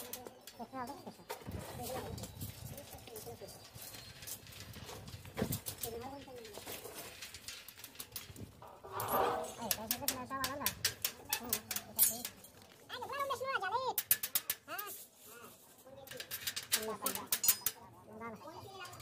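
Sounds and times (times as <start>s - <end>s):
pliers twisting and snipping wire: 8.0s - 12.5s.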